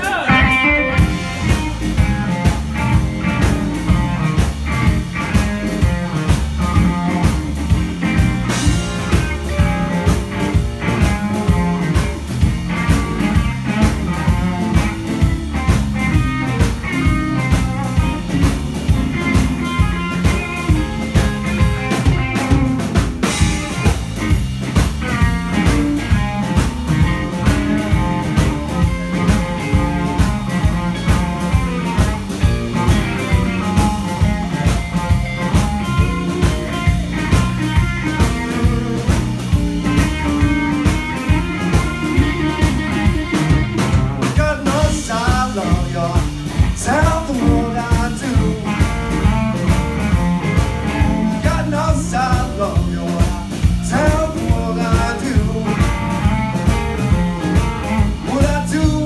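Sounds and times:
blues-rock band playing: 0:00.0 - 0:59.0
drums keeping a steady beat: 0:00.0 - 0:59.0.

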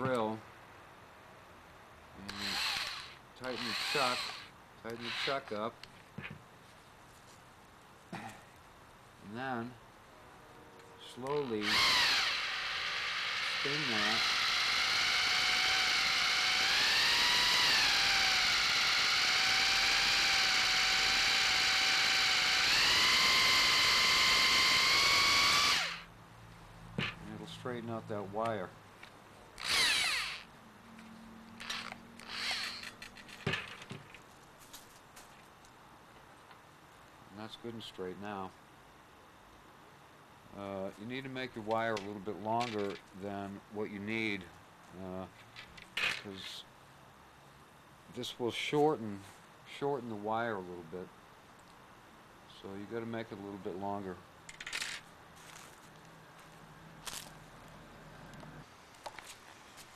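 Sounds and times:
drill motor spinning: 0:02.2 - 0:05.6, 0:11.4 - 0:26.1, 0:29.6 - 0:30.5, 0:31.6 - 0:33.4.

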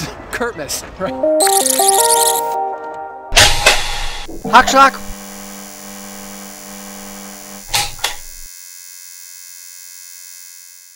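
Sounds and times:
electronic drone: 0:01.4 - 0:02.5, 0:03.4 - 0:08.5.

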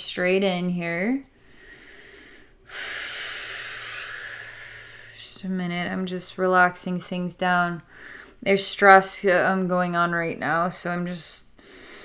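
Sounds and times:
woman's long breath: 0:01.4 - 0:05.2.

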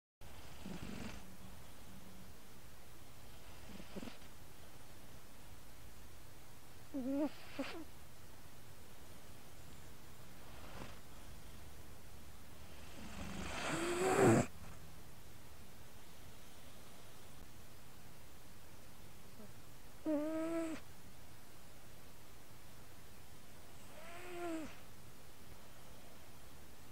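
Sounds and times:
cat purring and snoring: 0:00.3 - 0:01.3, 0:03.4 - 0:04.3, 0:06.9 - 0:07.9, 0:10.4 - 0:11.1, 0:12.7 - 0:14.8, 0:19.4 - 0:20.8, 0:23.8 - 0:24.8.

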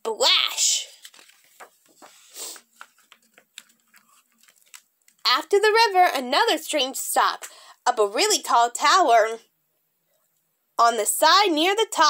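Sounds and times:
book pages turning: 0:00.6 - 0:05.3.

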